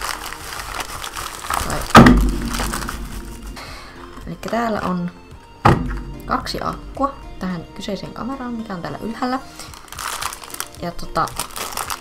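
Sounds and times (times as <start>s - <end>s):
bubble wrap crinkling: 0.0s - 5.0s, 9.1s - 12.0s
loud thump: 1.9s - 3.7s, 5.6s - 6.9s.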